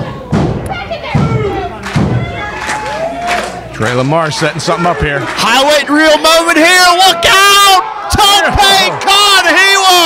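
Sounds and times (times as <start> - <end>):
voices shouting: 2.2 - 10.0.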